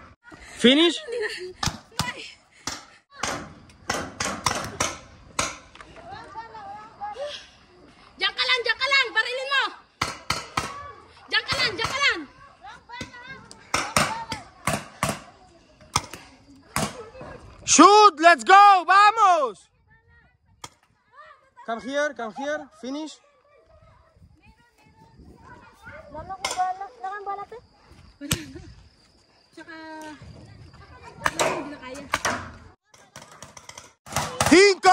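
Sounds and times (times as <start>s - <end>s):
paintball gun shot: 1.6s - 5.7s, 34.1s - 34.7s.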